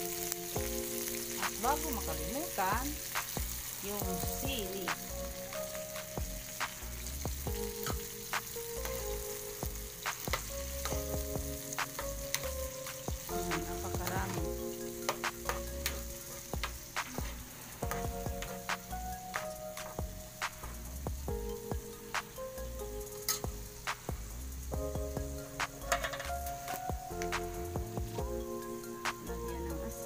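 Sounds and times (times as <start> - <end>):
chicken sizzling in a wok: 0.0 - 30.0.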